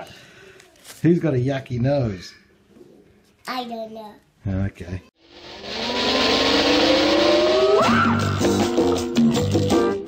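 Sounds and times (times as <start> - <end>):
rising whoosh sound effect: 5.2 - 9.2
music: 7.8 - 10.0.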